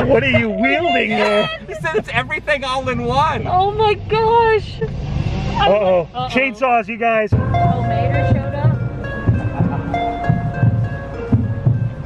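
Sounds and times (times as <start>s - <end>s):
heartbeat-like double thump: 7.3s - 12.0s.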